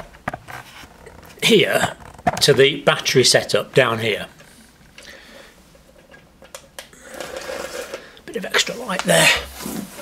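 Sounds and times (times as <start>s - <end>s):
rustling handling noise: 5.7s - 10.0s.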